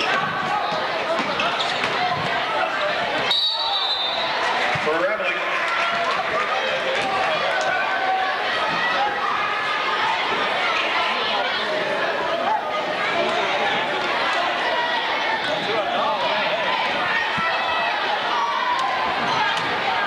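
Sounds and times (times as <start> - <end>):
crowd chatter in gymnasium: 0.0 - 20.0
referee's whistle blast: 3.3 - 4.4.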